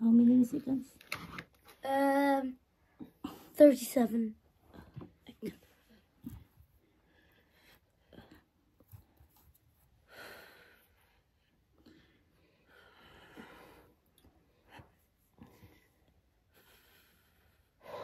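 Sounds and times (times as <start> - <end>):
woman breathing: 10.0 - 18.0.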